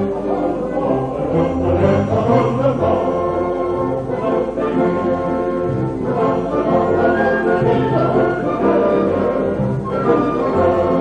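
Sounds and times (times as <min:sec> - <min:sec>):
male chorus singing: 0:00.0 - 0:11.0
orchestral accompaniment: 0:00.0 - 0:11.0.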